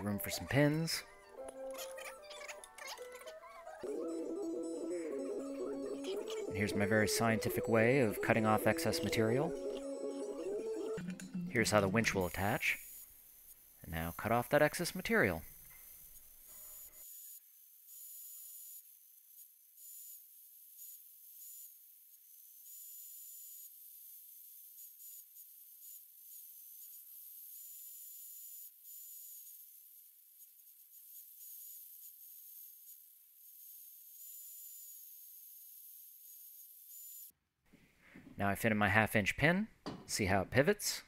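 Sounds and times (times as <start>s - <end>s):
band saw whine cutting steel: 3.8s - 13.1s.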